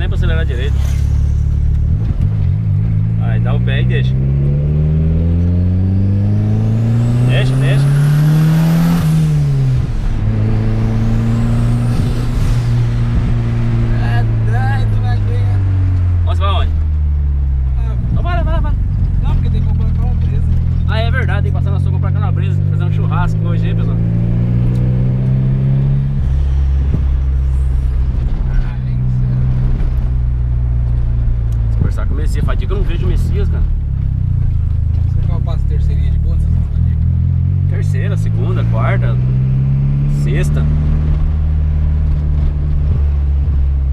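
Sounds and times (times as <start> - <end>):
people talking: 0.0 - 0.8, 3.2 - 4.2, 7.2 - 7.9, 13.9 - 15.6, 16.2 - 16.7, 17.7 - 24.0, 28.5 - 29.5, 31.7 - 33.7, 35.1 - 37.0, 37.7 - 39.2, 40.1 - 40.7
turbocharged car engine revving: 0.0 - 43.9.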